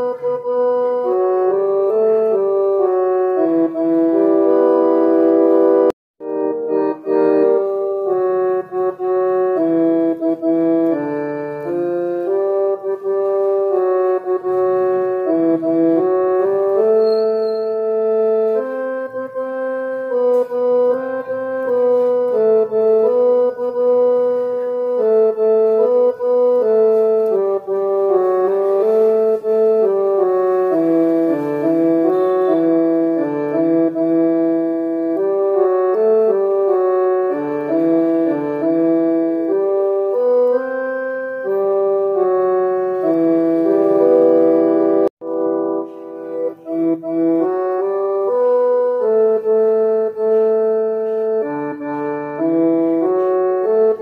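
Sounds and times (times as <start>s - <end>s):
keyboard slow melody: 0.0s - 54.0s.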